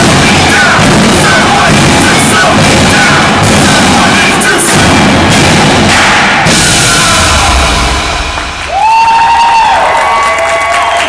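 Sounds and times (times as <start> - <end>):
drums and cymbals: 0.0 - 9.8.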